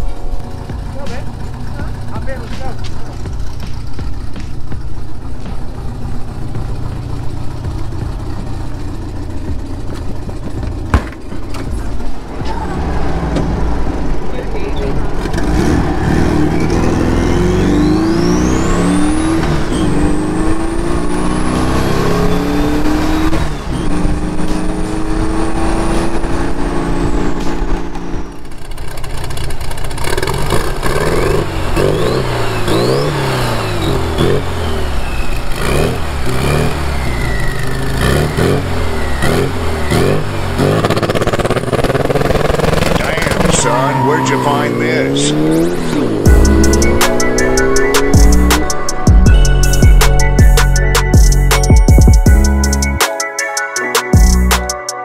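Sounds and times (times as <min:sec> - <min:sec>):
car engine accelerating hard: 0:00.0 - 0:53.0.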